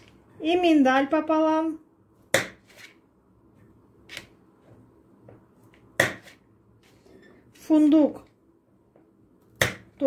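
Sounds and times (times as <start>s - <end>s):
knife cutting nuts on a board: 2.3s - 3.0s, 5.8s - 7.0s.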